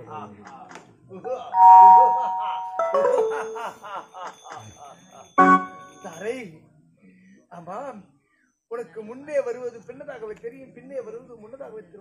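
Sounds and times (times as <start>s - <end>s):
chime-like ringing tones: 1.6s - 6.4s.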